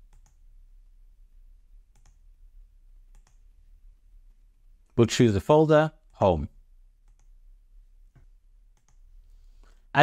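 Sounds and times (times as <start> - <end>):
computer mouse clicks: 0.0 - 0.4, 1.9 - 2.2, 3.1 - 3.5, 7.0 - 7.4, 8.1 - 9.1
steady low hum: 0.0 - 10.0.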